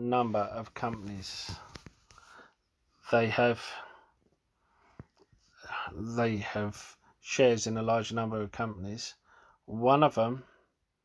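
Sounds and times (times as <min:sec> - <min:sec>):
man talking: 0:00.0 - 0:01.8, 0:03.0 - 0:04.0, 0:05.6 - 0:10.5
soft breath: 0:01.3 - 0:02.7, 0:03.7 - 0:06.0, 0:09.2 - 0:09.6.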